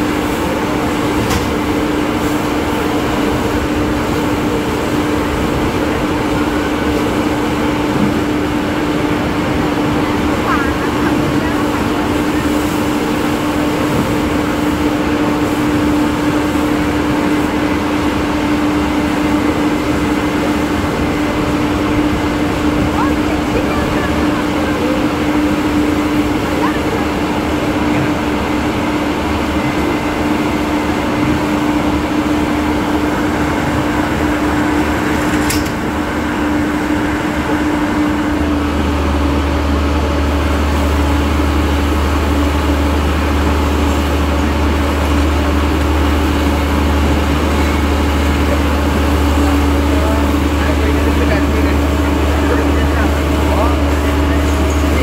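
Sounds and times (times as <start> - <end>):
fire engine running: 0.0 - 55.0.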